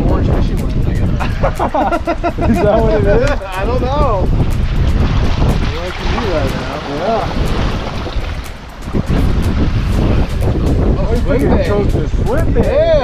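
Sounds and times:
water washing around hull: 0.0s - 13.0s
wind buffeting microphone: 0.0s - 13.0s.

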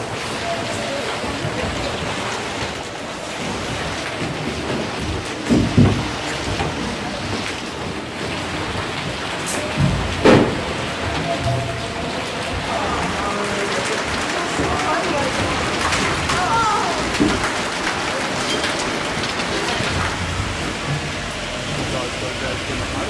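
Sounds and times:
hail and rain pelting: 0.0s - 23.0s
low rumbles: 1.5s - 23.0s.

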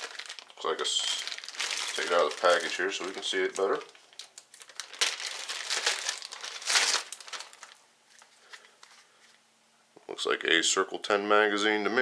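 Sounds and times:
plastic bag crinkling: 0.0s - 9.1s.

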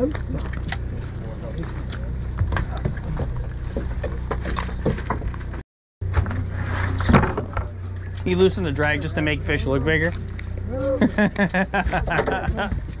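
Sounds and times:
boat engine humming: 0.0s - 13.0s.

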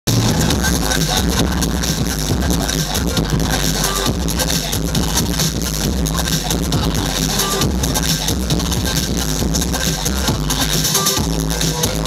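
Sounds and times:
breakbeat dance music: 0.0s - 12.0s.

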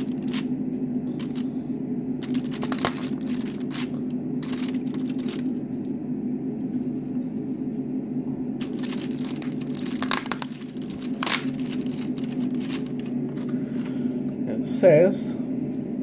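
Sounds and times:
card and foil crinkling: 0.0s - 0.5s, 1.1s - 1.5s, 2.2s - 5.6s, 8.6s - 13.6s
steady low hum: 0.0s - 16.0s.

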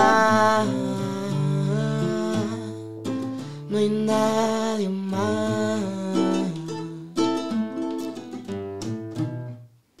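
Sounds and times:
man humming a melody: 0.0s - 7.6s
acoustic guitar chords: 0.0s - 10.0s.

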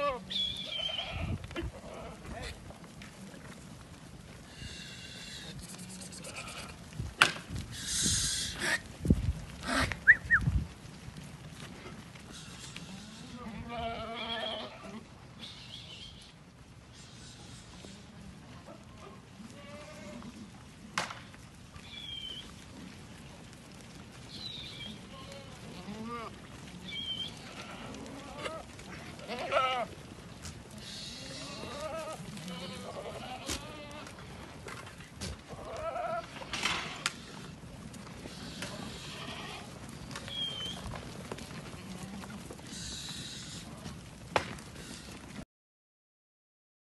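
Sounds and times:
goats bleating: 0.0s - 2.6s, 4.7s - 6.9s, 12.3s - 15.2s, 18.9s - 20.5s, 24.8s - 30.1s, 30.7s - 34.5s, 35.3s - 37.6s, 38.2s - 40.8s, 41.5s - 44.0s.

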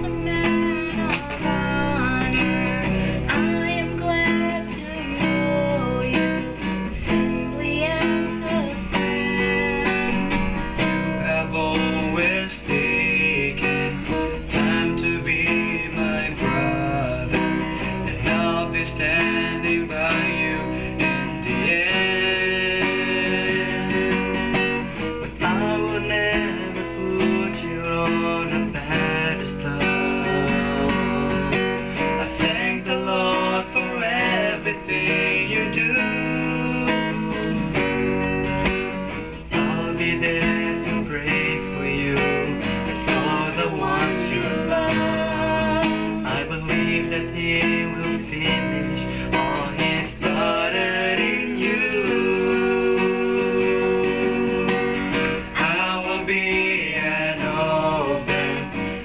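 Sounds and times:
people singing: 0.0s - 38.6s, 39.4s - 59.0s
acoustic guitar strumming: 0.0s - 59.0s.

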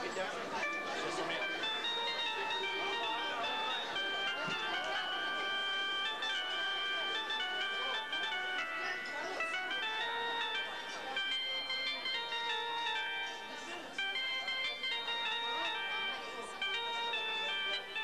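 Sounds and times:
accordion melody: 0.0s - 18.0s
crowd of diners chattering: 0.0s - 18.0s.

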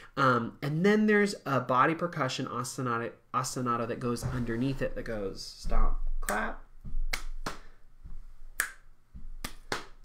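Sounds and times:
hand clap: 6.2s - 6.5s, 7.1s - 7.8s, 8.6s - 8.8s, 9.4s - 10.0s
finger snaps: 8.6s - 10.0s.

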